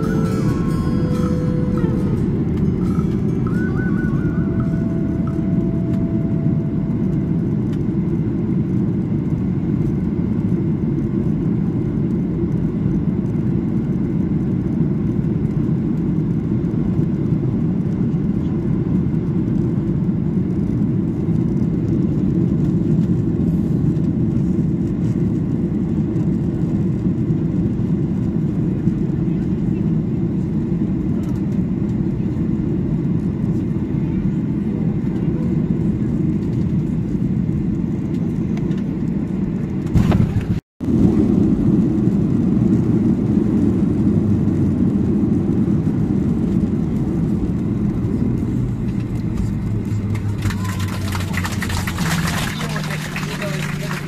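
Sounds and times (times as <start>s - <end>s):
jet engines roaring in cabin: 0.0s - 54.0s.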